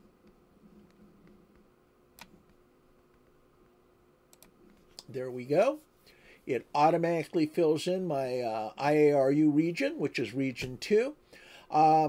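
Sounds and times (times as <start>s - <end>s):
faint steady hum: 0.0s - 12.0s
computer mouse click: 4.3s - 5.1s.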